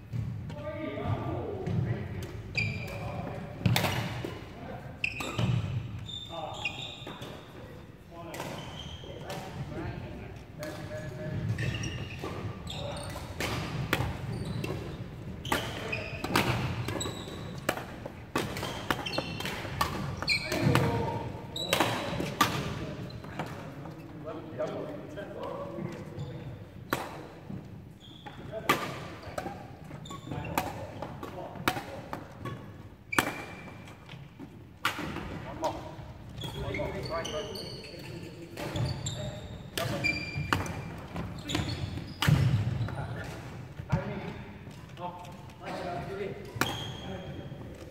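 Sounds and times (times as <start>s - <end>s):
rackets hitting shuttlecocks: 2.2s - 4.4s, 10.6s - 23.6s, 39.7s - 44.1s, 46.4s - 47.0s.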